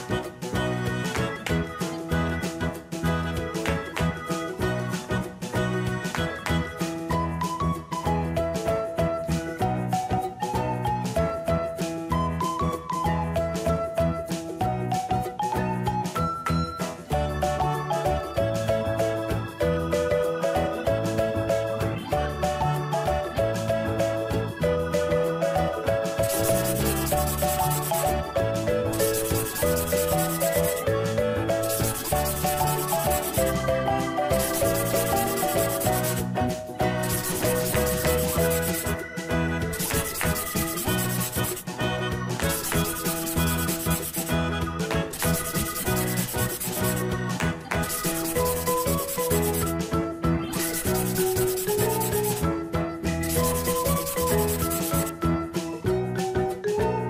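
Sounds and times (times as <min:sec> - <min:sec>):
cheerful background music: 0:00.0 - 0:57.0
marker rubbing on paper: 0:26.2 - 0:28.2, 0:28.9 - 0:30.9, 0:31.6 - 0:33.6, 0:34.3 - 0:36.3, 0:37.0 - 0:39.0, 0:39.7 - 0:41.7, 0:42.4 - 0:44.4, 0:45.1 - 0:47.1, 0:47.8 - 0:49.7, 0:50.5 - 0:52.4, 0:53.2 - 0:55.1.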